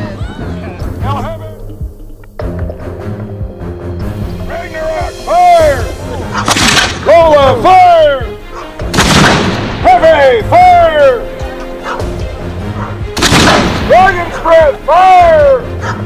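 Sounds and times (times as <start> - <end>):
cannon booms: 8.9 - 9.8, 13.2 - 13.9.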